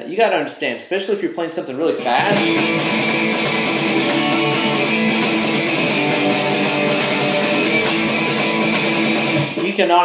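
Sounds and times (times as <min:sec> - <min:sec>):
electric guitar power chords strummed: 0:02.0 - 0:09.7.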